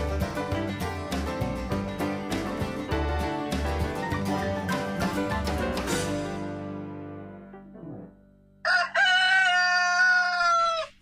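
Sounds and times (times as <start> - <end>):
background music: 0.0 - 9.0
rooster crowing: 8.6 - 11.0.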